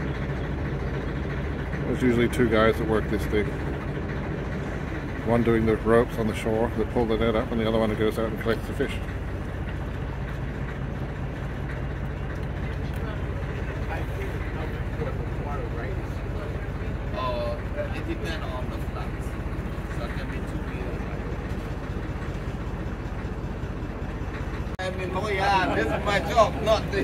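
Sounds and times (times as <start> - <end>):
boat engine running: 0.0 - 27.0.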